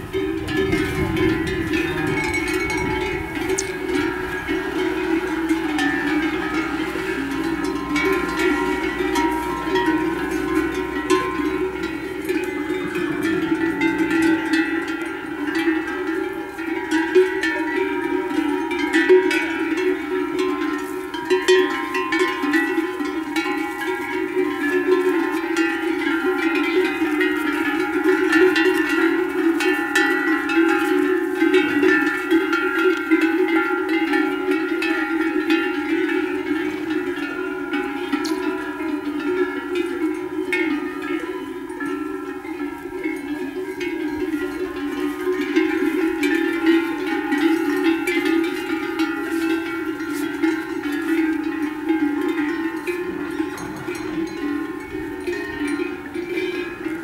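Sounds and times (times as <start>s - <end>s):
livestock bells clanking: 0.0s - 57.0s.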